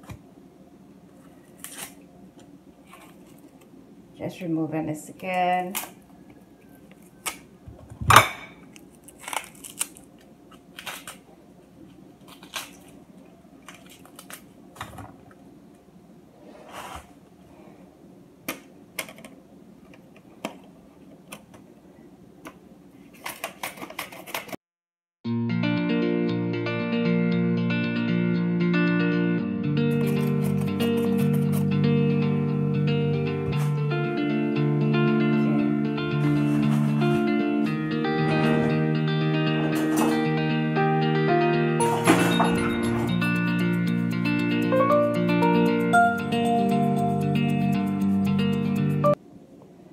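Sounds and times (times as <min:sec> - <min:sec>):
guitar music: 0:25.3 - 0:49.2.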